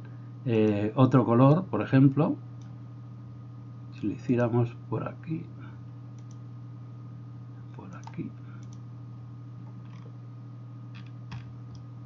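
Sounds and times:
low electrical hum: 0:00.0 - 0:12.0
computer mouse clicks: 0:06.2 - 0:06.4, 0:07.9 - 0:08.8, 0:09.6 - 0:10.1, 0:11.0 - 0:11.9.

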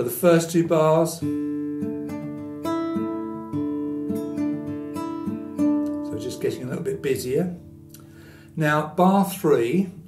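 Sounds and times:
man speaking: 0:00.0 - 0:01.2, 0:06.1 - 0:07.6, 0:08.6 - 0:10.0
fingerpicked classical guitar: 0:00.0 - 0:10.0.

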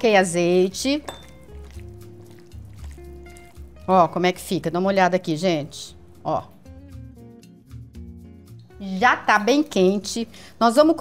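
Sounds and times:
soft background music: 0:00.0 - 0:11.0
person speaking: 0:03.8 - 0:06.6.

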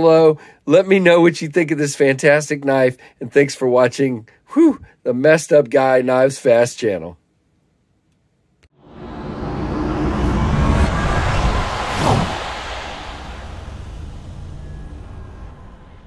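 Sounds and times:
falling pitch sweep: 0:08.7 - 0:16.0
whoosh noisy rush: 0:08.8 - 0:16.0.

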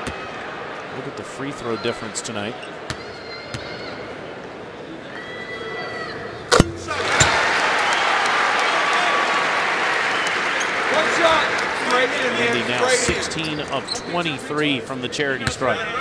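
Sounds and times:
sharp thud: 0:06.5 - 0:07.0
crowd cheering and applauding: 0:06.9 - 0:13.8.

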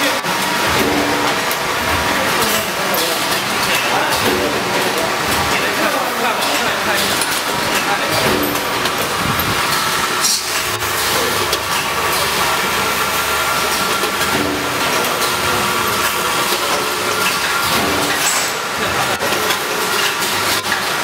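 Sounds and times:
packaging machinery running: 0:00.0 - 0:21.0.

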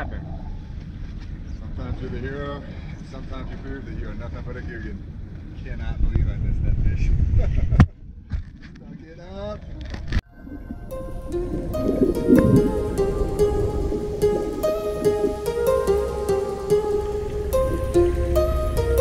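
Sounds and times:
wind rumbling on microphone: 0:04.7 - 0:09.0, 0:09.6 - 0:15.5.

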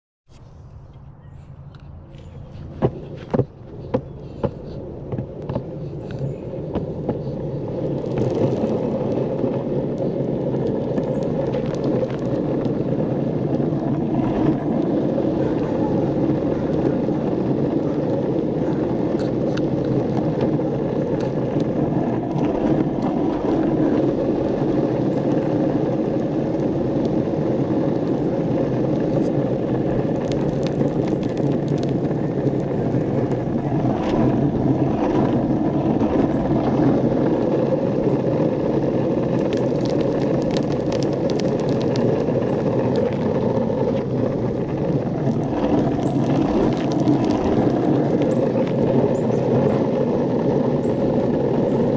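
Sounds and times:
longboard wheels rolling on asphalt: 0:00.3 - 0:51.9.

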